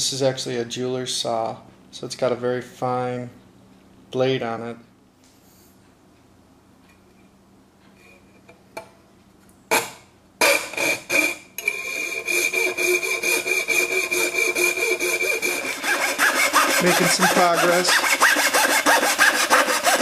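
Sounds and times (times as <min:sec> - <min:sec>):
fine saw cutting circuit board: 0:09.7 - 0:20.0.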